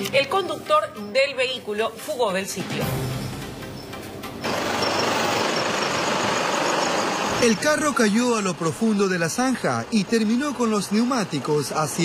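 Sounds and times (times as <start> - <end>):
vehicle engine running: 4.2 - 12.0.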